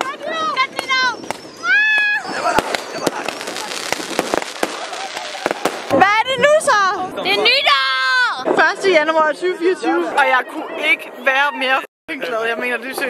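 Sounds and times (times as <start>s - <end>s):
excited shouts: 0.0s - 3.9s, 4.6s - 8.4s
fireworks cracking and banging: 0.0s - 6.8s.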